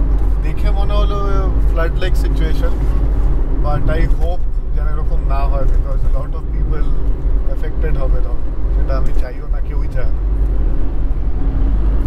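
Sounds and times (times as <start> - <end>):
engine and tyre rumble: 0.0 - 12.0
man talking: 0.4 - 2.8, 3.6 - 10.2.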